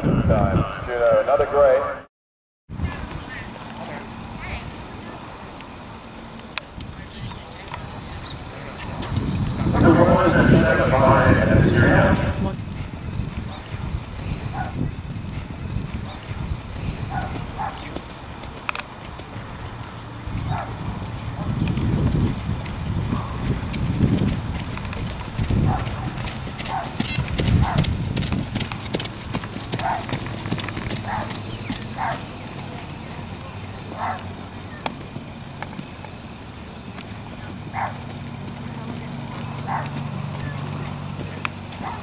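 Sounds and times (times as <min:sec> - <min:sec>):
horse hoofbeats on gravel: 0:06.8 - 0:42.0.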